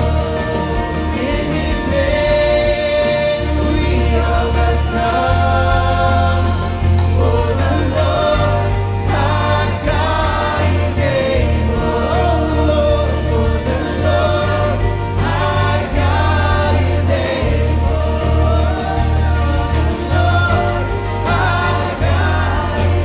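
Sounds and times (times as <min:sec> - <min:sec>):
choir singing: 0:00.0 - 0:23.0
man singing: 0:00.0 - 0:23.0
steady bass: 0:00.0 - 0:23.0
strummed acoustic guitar: 0:00.0 - 0:23.0.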